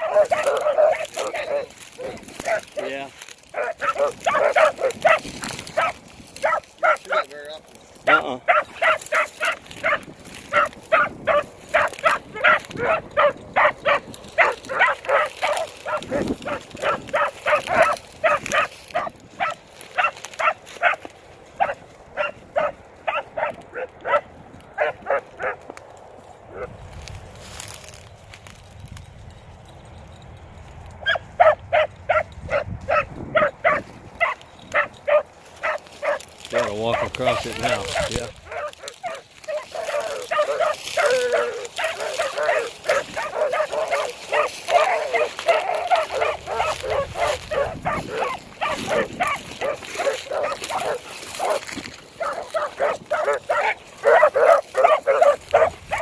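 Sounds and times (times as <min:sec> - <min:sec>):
dogs barking: 0:00.0 - 0:28.7, 0:30.9 - 0:56.0.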